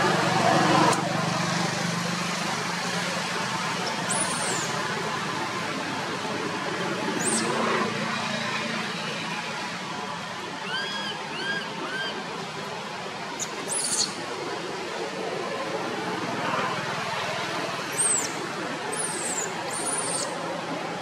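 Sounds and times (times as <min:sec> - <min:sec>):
distant road traffic: 0:00.0 - 0:21.0.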